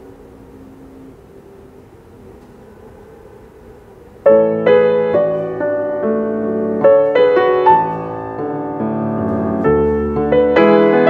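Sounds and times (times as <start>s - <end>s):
quiet hiss: 0.0s - 11.0s
piano chords: 3.6s - 11.0s.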